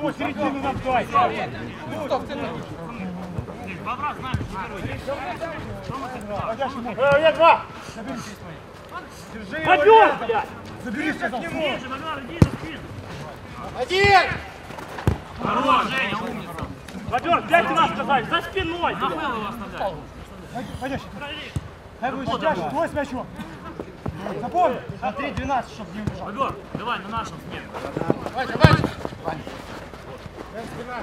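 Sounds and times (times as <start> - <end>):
players shouting: 0.0 - 8.4, 9.4 - 19.9, 24.1 - 29.6
ball being kicked: 12.4 - 12.7, 28.0 - 29.2.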